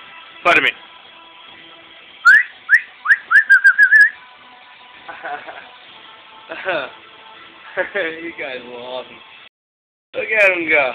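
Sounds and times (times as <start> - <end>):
person whistling upward chirps: 2.2 - 4.2.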